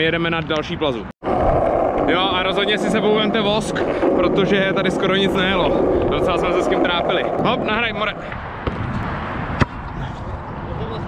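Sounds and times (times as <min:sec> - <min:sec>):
skateboard wheels rolling on asphalt: 0:00.2 - 0:11.0.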